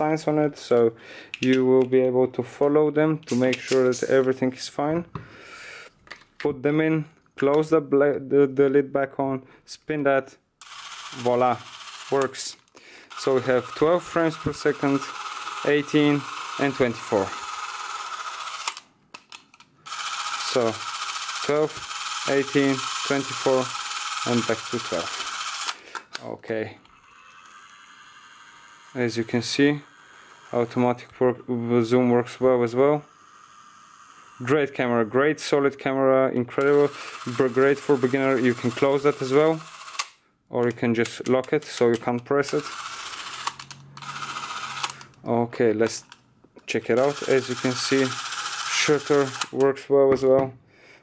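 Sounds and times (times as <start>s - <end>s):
camera motor whirring: 10.6s - 12.5s, 13.1s - 18.9s, 19.8s - 26.2s, 26.8s - 35.3s, 36.6s - 40.2s, 42.5s - 45.2s, 47.0s - 49.6s.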